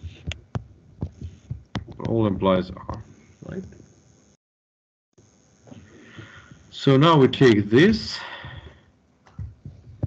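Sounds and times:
pen stylus tapping on tablet: 0:00.0 - 0:02.2.

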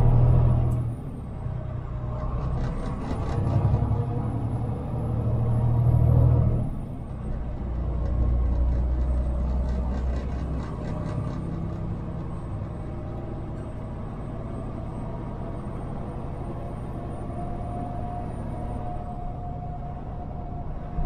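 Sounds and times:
truck diesel engine drone: 0:00.0 - 0:21.0.

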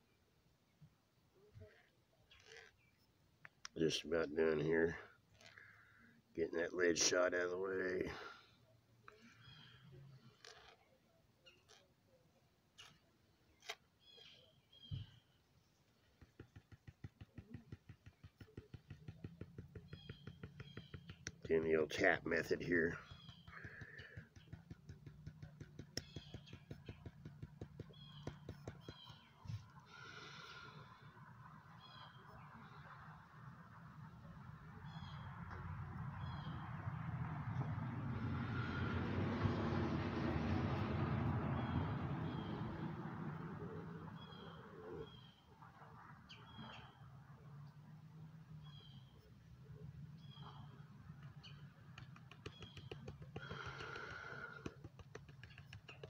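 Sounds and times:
rapid tapping on a metal pan: 0:16.2 - 0:21.4, 0:52.0 - 0:56.0.

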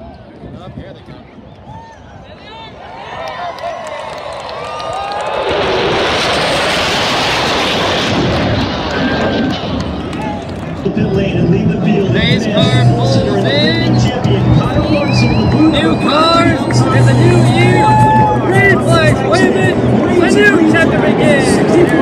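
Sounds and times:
jets flying over: 0:03.6 - 0:22.0.

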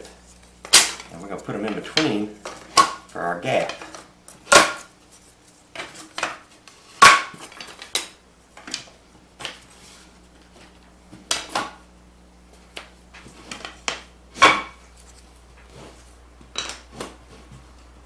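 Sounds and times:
wooden boards knocking and clattering: 0:00.7 - 0:03.0, 0:03.6 - 0:04.9, 0:07.0 - 0:09.6, 0:13.2 - 0:14.8.

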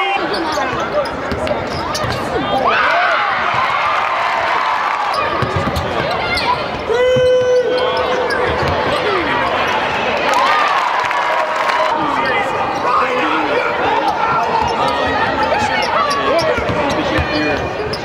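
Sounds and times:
sneakers squeaking: 0:00.0 - 0:02.7, 0:05.0 - 0:10.0, 0:13.9 - 0:18.0
voices in arena: 0:00.0 - 0:18.0
basketball bouncing on hardwood: 0:05.4 - 0:06.0.

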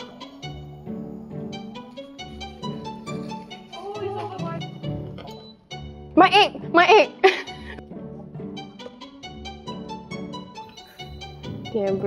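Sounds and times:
string music led by violin: 0:00.0 - 0:05.1, 0:05.7 - 0:12.0.

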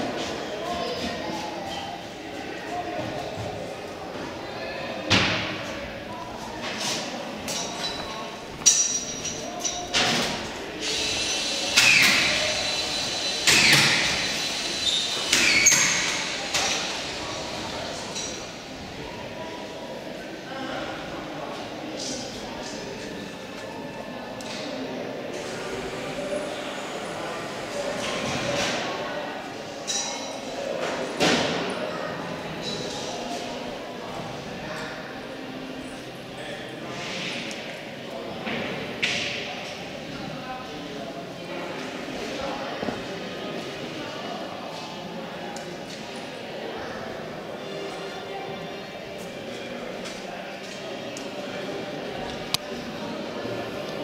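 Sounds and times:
indistinct voices echoing: 0:00.0 - 0:54.0.

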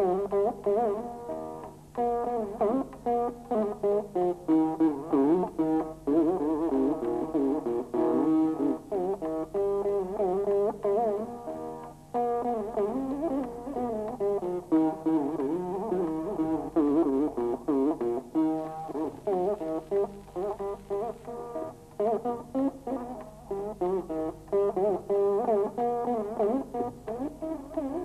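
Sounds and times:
plucked veena notes with slides: 0:00.0 - 0:28.0.

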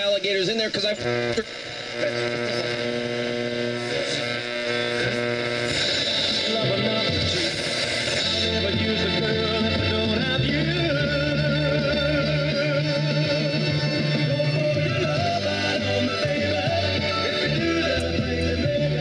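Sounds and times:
person singing on car radio: 0:00.8 - 0:19.0.

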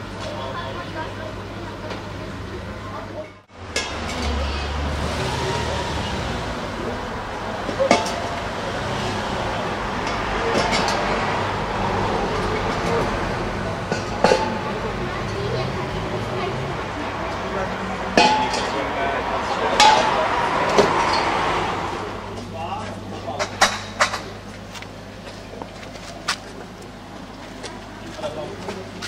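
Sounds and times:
hubbub of voices: 0:00.0 - 0:29.0.

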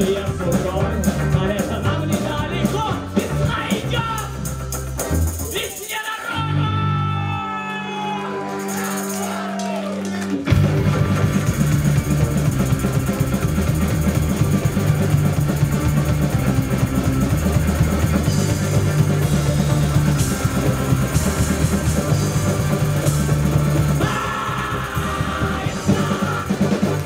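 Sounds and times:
live rock band playing: 0:00.0 - 0:27.0
tambourine: 0:08.5 - 0:09.6.

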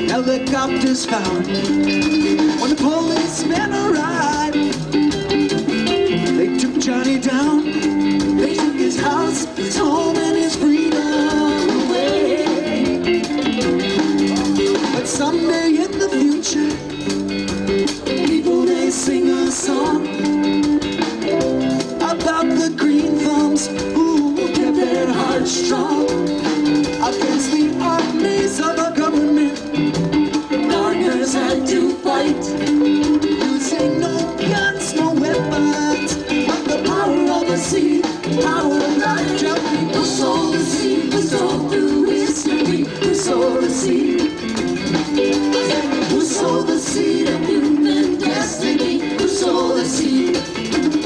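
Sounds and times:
person singing: 0:00.0 - 0:17.2, 0:17.9 - 0:51.0
drums: 0:00.0 - 0:51.0
rock band playing: 0:00.0 - 0:51.0
vibrato lead guitar line: 0:00.0 - 0:51.0.

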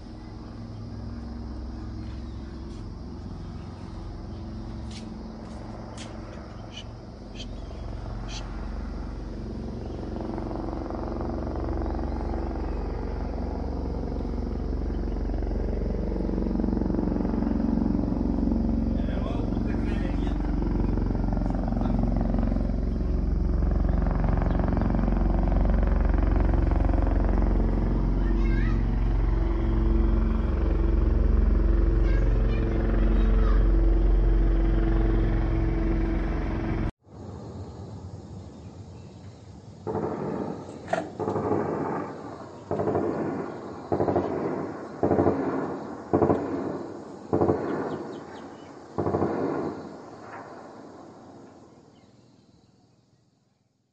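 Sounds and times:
helicopter flying overhead: 0:00.0 - 0:38.9, 0:39.6 - 0:52.3.

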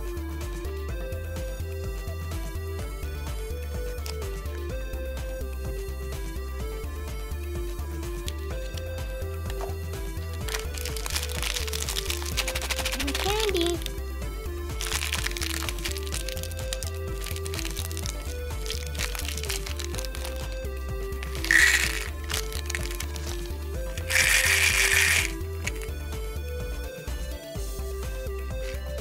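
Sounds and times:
background music with beat: 0:00.0 - 0:29.0
plastic wrapper crinkling: 0:10.4 - 0:13.9, 0:14.8 - 0:25.9
hard candies rattling into plastic: 0:10.4 - 0:14.0, 0:14.8 - 0:26.0.

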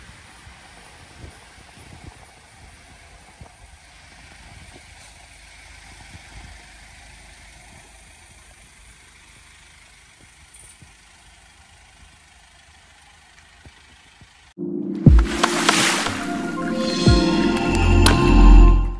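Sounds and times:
faint van engine idling: 0:00.0 - 0:14.6.

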